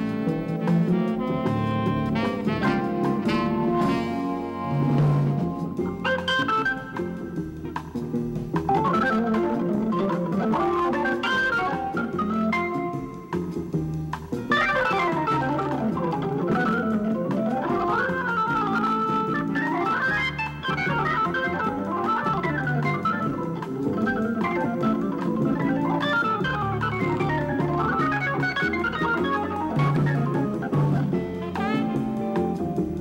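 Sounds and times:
soul-jazz organ solo: 0.0s - 33.0s.

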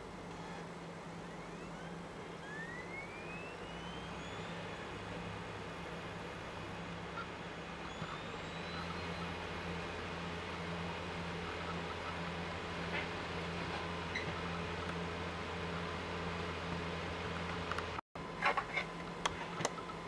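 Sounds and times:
low electrical hum: 0.0s - 20.0s
faint rising whistles: 0.4s - 12.4s.

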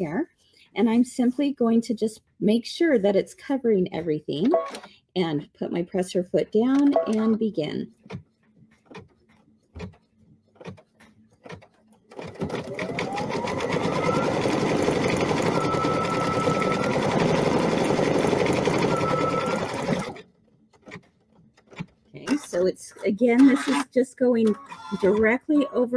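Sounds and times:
embroidery machine stitching: 10.6s - 22.4s.

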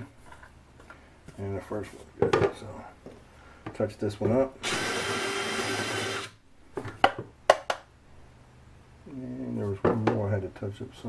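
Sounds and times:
cordless drill drilling wood: 4.6s - 6.4s.

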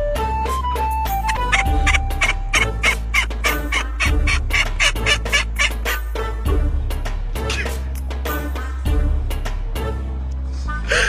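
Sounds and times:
low bass of background music: 0.0s - 11.0s
duck quacking rapidly: 1.2s - 5.8s.

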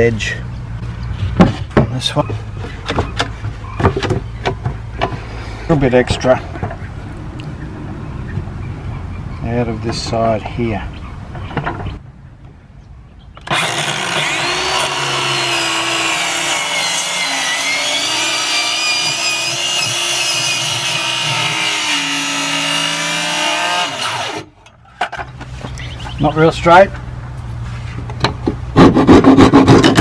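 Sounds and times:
circular saw cutting wood: 13.4s - 24.5s.

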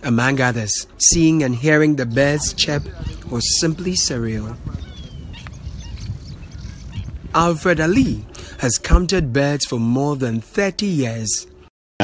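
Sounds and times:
water birds calling: 0.1s - 10.4s.

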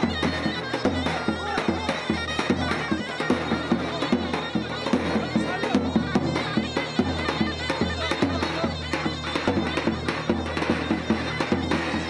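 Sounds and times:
reedy shawm melody: 0.0s - 12.0s
steady drum beat: 0.0s - 12.0s.

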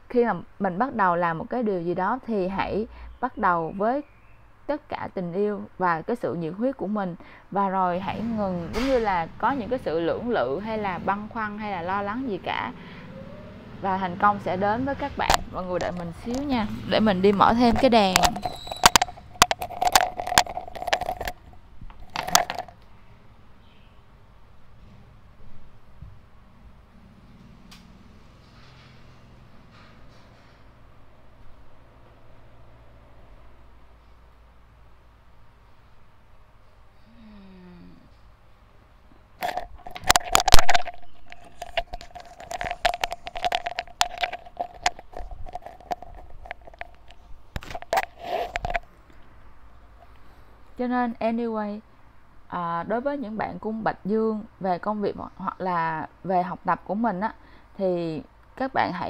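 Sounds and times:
objects being handled clicking: 15.3s - 16.7s, 17.3s - 22.9s, 39.4s - 49.3s
metallic clinking and rattling: 17.3s - 22.8s, 39.4s - 48.9s.

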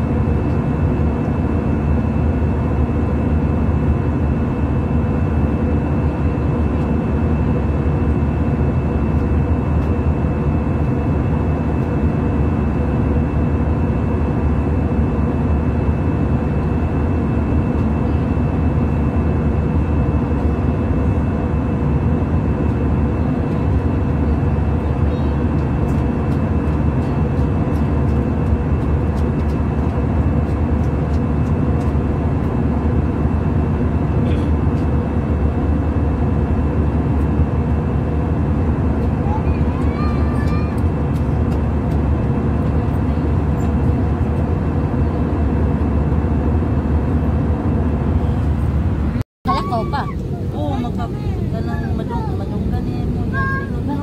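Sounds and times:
airliner cabin drone: 0.0s - 54.0s.

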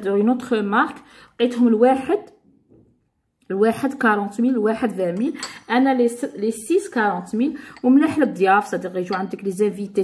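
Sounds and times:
woman talking: 0.0s - 2.4s, 3.4s - 10.0s
dishes clinking: 5.2s - 6.4s, 7.6s - 9.6s.

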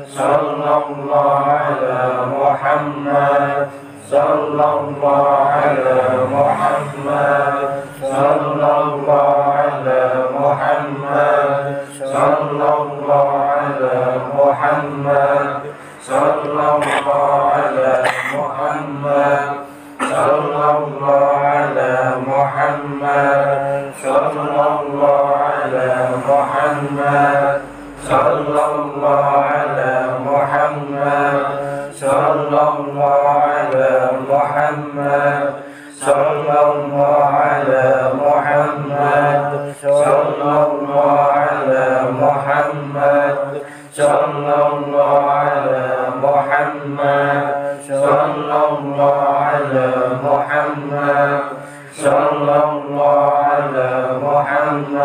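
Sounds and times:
men chanting in unison: 0.0s - 55.0s.

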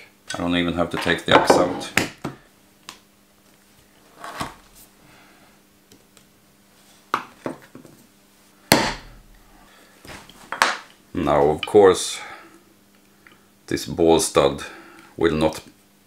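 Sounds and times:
tools knocking on workbench: 1.3s - 2.4s.

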